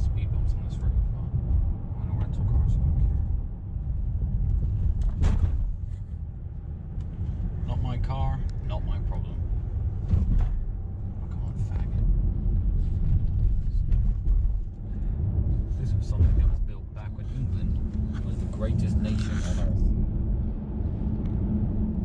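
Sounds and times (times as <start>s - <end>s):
car cabin road rumble: 0.0s - 22.0s.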